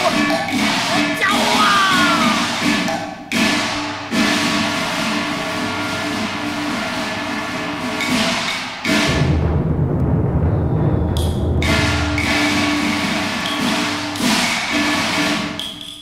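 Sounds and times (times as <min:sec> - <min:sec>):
opera instrumental ensemble: 0:00.0 - 0:08.6
heavy deep percussion: 0:00.0 - 0:15.4
sharp percussion strikes: 0:00.0 - 0:16.0.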